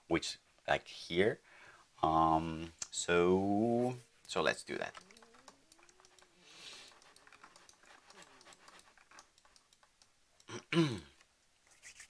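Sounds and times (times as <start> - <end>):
soft breath: 1.4 - 2.0
typing on computer keyboard: 4.8 - 10.2.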